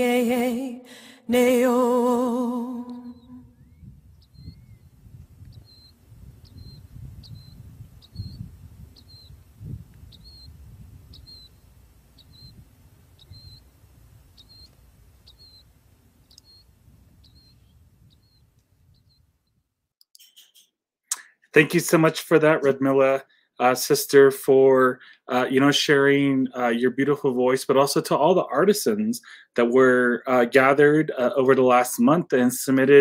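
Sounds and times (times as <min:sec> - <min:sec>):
short high chirp repeating: 0:20.1 - 0:21.3.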